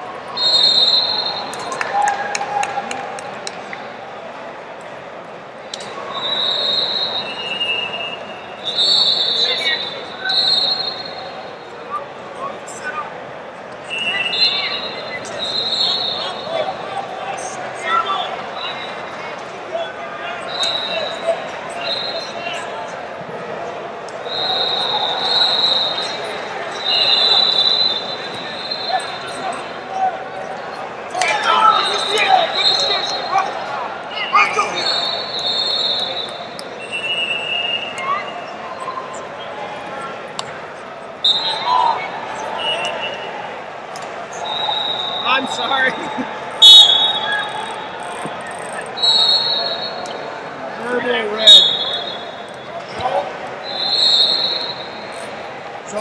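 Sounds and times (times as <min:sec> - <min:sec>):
people talking and calling out: 0:00.0 - 0:56.0.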